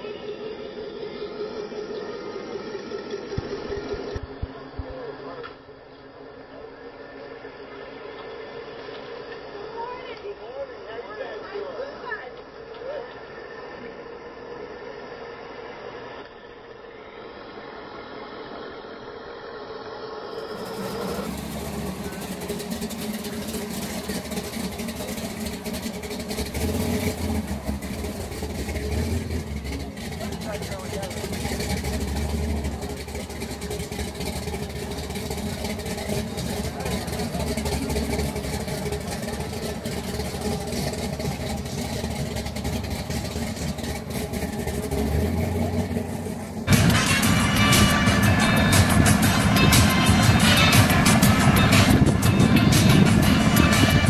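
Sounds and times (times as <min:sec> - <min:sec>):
car engines rumbling: 0:00.0 - 0:54.0.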